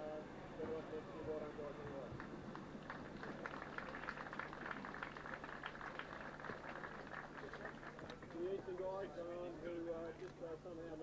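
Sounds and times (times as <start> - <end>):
man speaking through microphone: 0.0 - 2.1
crowd applauding: 2.2 - 9.0.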